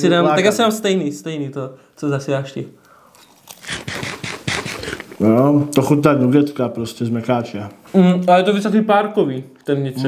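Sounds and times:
crunchy chewing: 2.9s - 5.2s.

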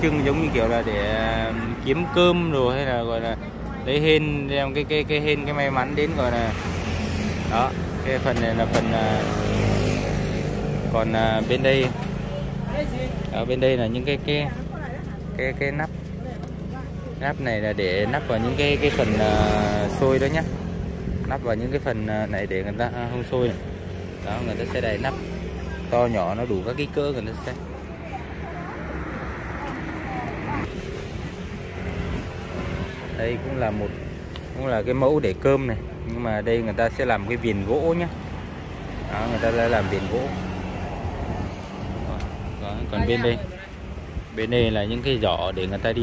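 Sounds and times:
faint voices talking: 22.1s - 44.9s.

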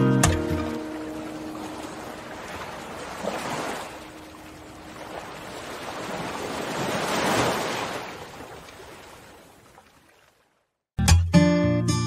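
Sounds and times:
guitar chord: 0.0s - 1.2s
waves washing in: 0.0s - 10.5s.

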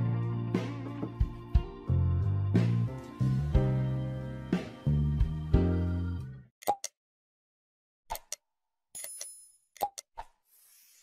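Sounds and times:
sharp pops and clicks: 6.6s - 7.0s, 9.8s - 10.3s.

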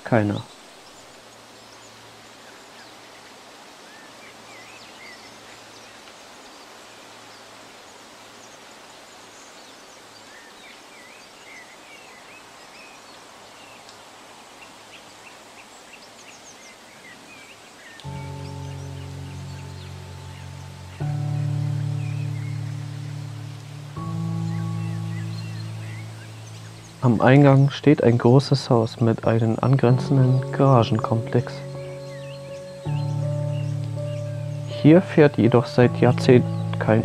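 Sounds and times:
small birds chirping: 0.0s - 37.0s
steady hiss: 0.0s - 37.0s
music with held notes: 18.0s - 27.8s, 29.6s - 37.0s.

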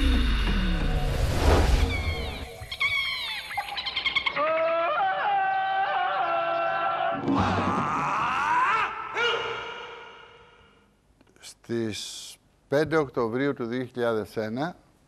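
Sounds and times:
rising sweep: 0.0s - 2.8s
high wailing gliding calls: 1.8s - 5.8s.

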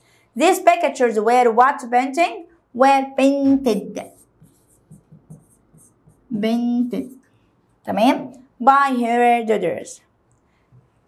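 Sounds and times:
stylus scratching on screen: 3.2s - 7.4s.

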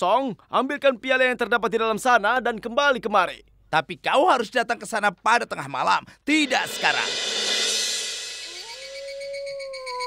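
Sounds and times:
animal howl: 8.5s - 10.0s.

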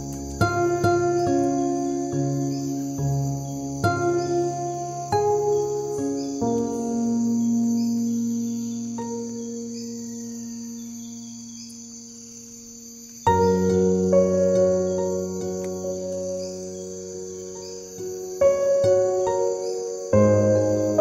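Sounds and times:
crickets chirring: 0.0s - 21.0s
slow piano chords: 0.0s - 21.0s.

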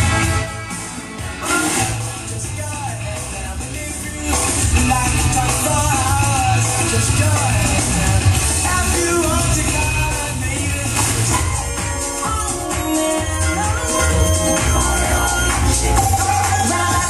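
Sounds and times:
song over loudspeakers: 0.0s - 17.0s.

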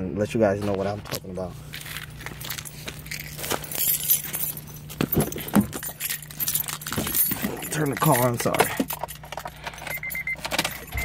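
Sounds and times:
steady low hum: 0.0s - 11.0s
keys jingling: 1.7s - 11.0s.

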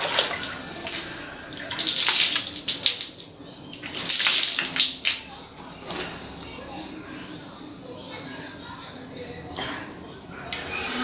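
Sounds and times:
water splashing on face: 0.0s - 5.3s.

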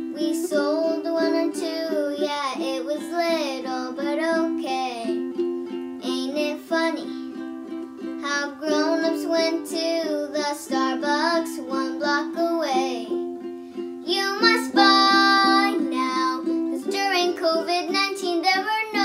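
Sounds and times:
girl singing: 0.0s - 19.0s
ukulele strumming: 0.0s - 19.0s.

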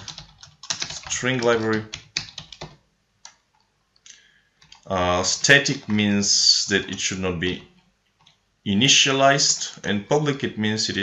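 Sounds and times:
computer keyboard typing: 0.0s - 3.7s, 4.6s - 7.6s.

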